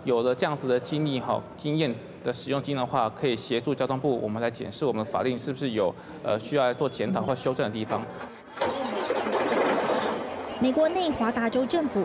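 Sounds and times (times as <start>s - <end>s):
car engine starting and running: 8.5s - 10.6s.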